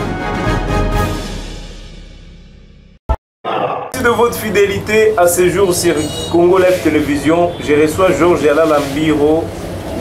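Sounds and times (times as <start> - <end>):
intro theme music: 0.0 - 3.0.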